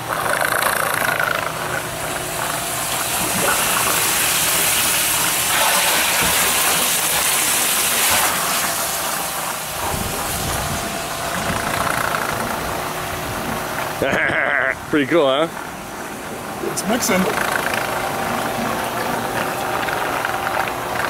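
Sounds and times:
pump rushing water through hoses: 0.0s - 14.6s, 15.2s - 21.0s
engine running steadily: 0.0s - 21.0s.

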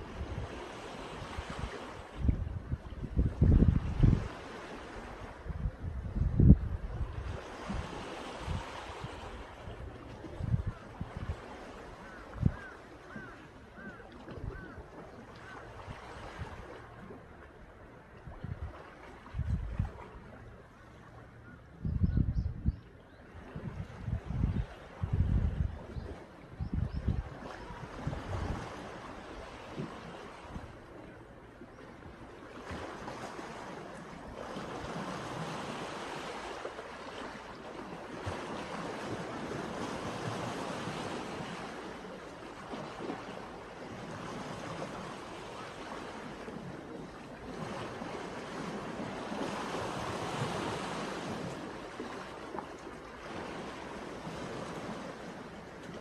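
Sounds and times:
wind buffeting microphone: 0.0s - 13.3s, 18.2s - 20.1s, 21.7s - 29.0s
small waves washing on shore: 0.0s - 21.6s, 23.3s - 56.0s
wind: 0.0s - 56.0s.

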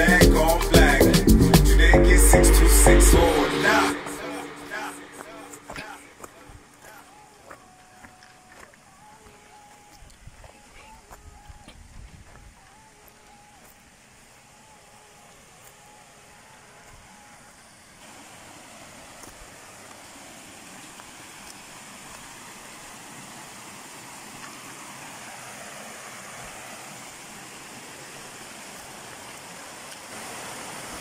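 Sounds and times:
water running over rocks: 4.8s - 31.0s.

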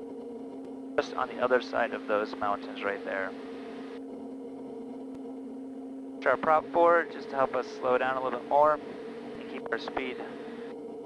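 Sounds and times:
turboprop engine drone: 0.0s - 11.0s.

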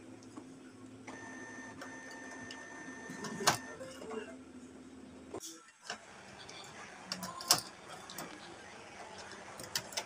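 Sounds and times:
printer humming and whining: 0.0s - 4.3s, 5.9s - 10.0s.

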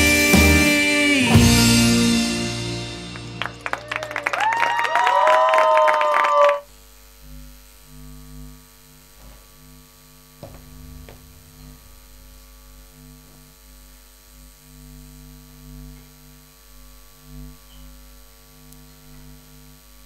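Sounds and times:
folk-bluegrass song chord: 0.0s - 3.6s
low electrical mains hum: 0.8s - 20.0s.

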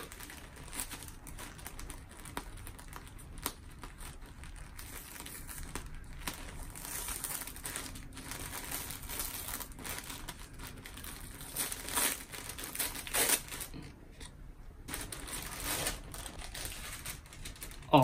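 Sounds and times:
paper crinkling and crackling: 0.0s - 18.0s.

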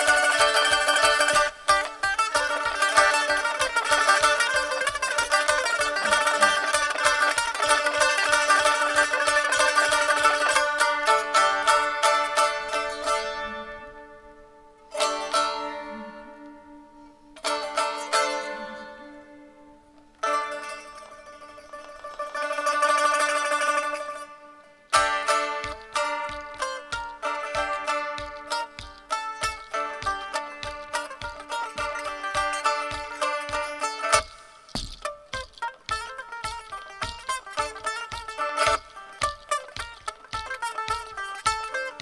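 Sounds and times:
long-necked lute plucked: 0.0s - 42.0s.

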